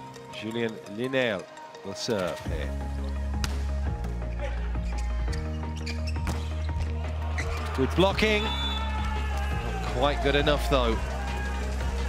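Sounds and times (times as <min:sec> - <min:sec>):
background music with deep bass: 0:00.0 - 0:12.0.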